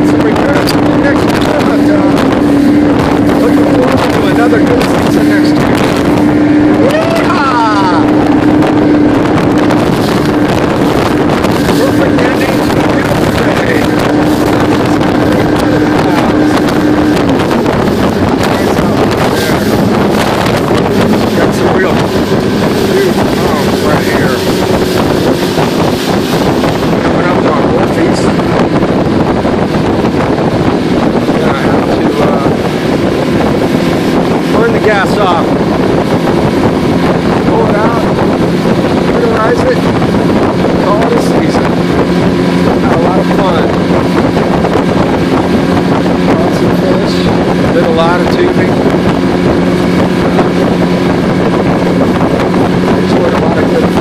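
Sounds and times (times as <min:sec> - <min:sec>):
motorboat engine running: 0:00.0 - 0:54.0
water rushing past hull: 0:00.0 - 0:54.0
wind on microphone: 0:00.0 - 0:54.0.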